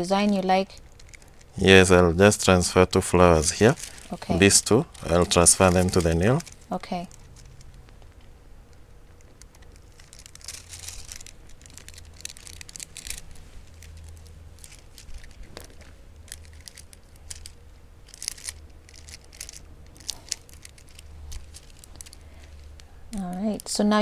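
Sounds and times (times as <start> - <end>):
foil crinkling and rustling: 3.1 - 7.6, 9.4 - 24.0.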